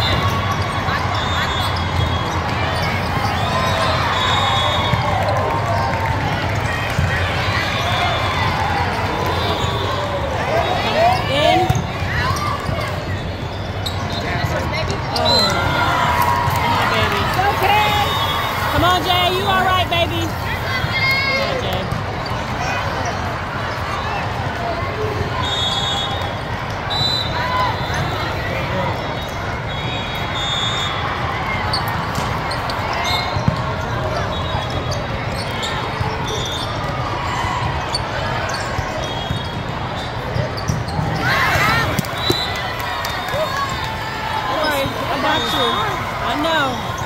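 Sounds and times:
shoes squeaking on court: 0:00.0 - 0:05.9, 0:09.0 - 0:24.0, 0:31.5 - 0:47.0
crowd chatter: 0:00.0 - 0:47.0
voices shouting: 0:15.0 - 0:21.8, 0:40.9 - 0:47.0.

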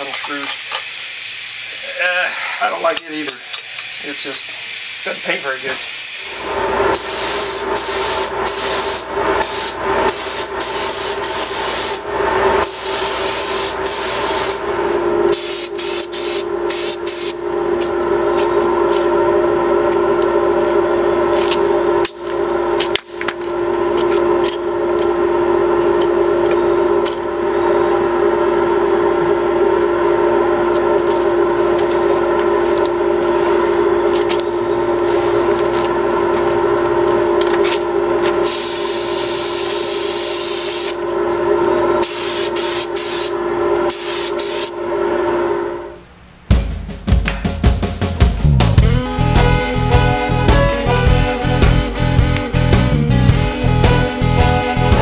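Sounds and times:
paint spray gun hissing: 0:00.0 - 0:17.5, 0:27.8 - 0:44.9
steady pitched hum: 0:00.0 - 0:55.0.

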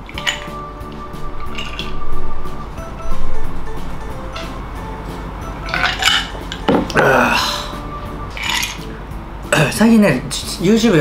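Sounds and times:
glass knocking on a table: 0:06.7 - 0:06.9.

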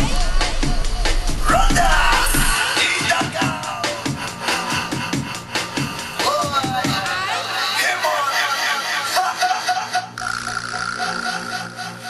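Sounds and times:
electronic music rattling pulse: 0:10.1 - 0:12.0.

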